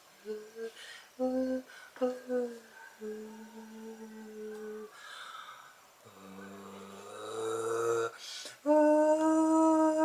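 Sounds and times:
man humming a low note: 6.1 - 10.0.

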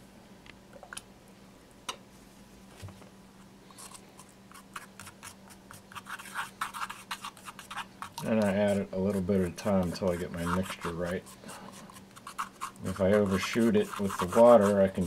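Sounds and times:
brush scraping in ceramic dish: 3.7 - 15.0
man talking: 8.2 - 11.2, 12.8 - 15.0.

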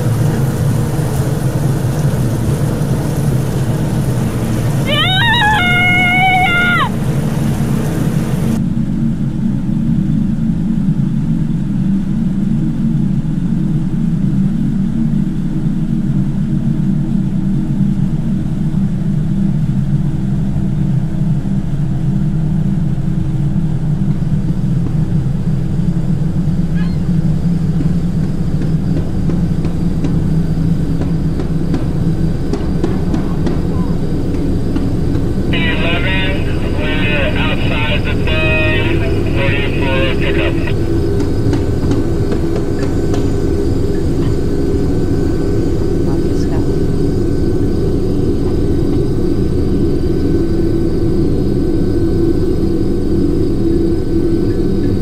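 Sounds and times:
outboard motor droning: 0.0 - 55.0.

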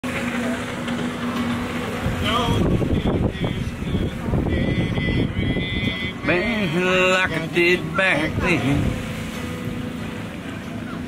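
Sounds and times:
outdoor noise: 0.0 - 11.0
steady engine drone: 0.0 - 11.0.

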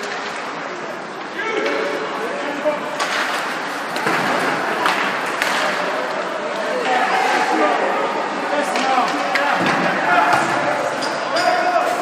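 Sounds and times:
hockey sticks and puck knocking: 3.0 - 5.8, 8.6 - 11.5.

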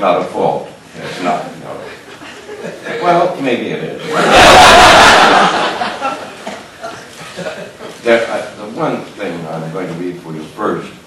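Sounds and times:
man speaking: 0.0 - 2.1, 7.9 - 11.0
audience laughing: 4.0 - 7.9.

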